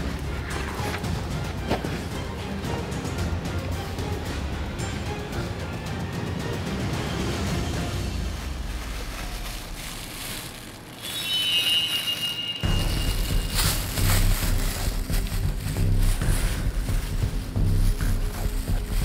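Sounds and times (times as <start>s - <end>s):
bass-heavy rhythmic track: 0.0s - 9.1s, 12.6s - 19.0s
film background music: 0.0s - 19.0s
high shimmering tone: 10.9s - 14.2s.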